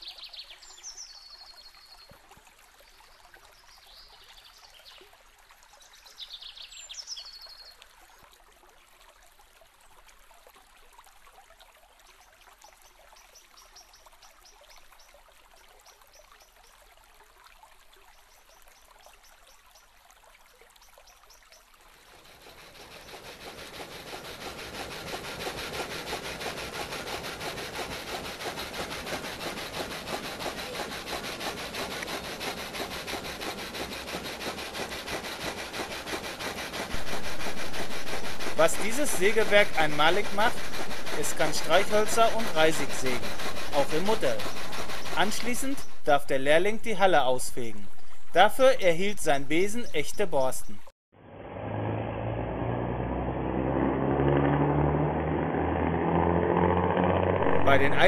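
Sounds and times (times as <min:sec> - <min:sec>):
saw cutting wood: 0:22.1 - 0:46.1, 0:51.3 - 0:58.0.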